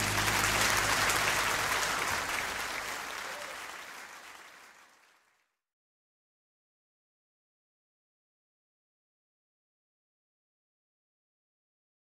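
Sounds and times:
band final low chord: 0.0 - 2.2
audience applauding: 0.0 - 5.5.

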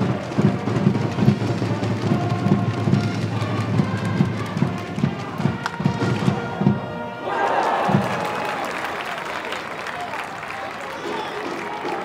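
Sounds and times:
crowd applauding and cheering: 1.8 - 12.0.

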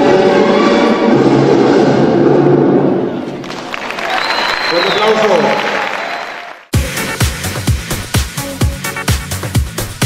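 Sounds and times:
audience clapping: 3.4 - 6.8
dance music: 6.7 - 10.0.

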